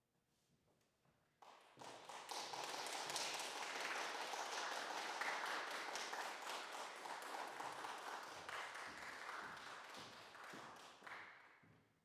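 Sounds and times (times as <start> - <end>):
audience applause: 1.8 - 11.2.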